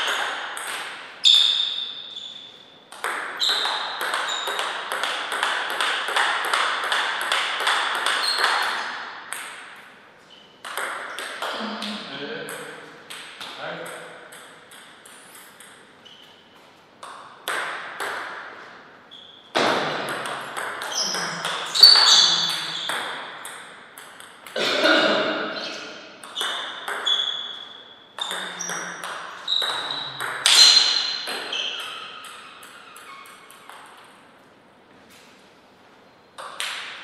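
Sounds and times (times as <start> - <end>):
table tennis ball clicking: 10.6 - 11.5, 12.5 - 15.9, 20.1 - 24.6, 26.2 - 27.2, 28.2 - 30.6, 31.2 - 34.2.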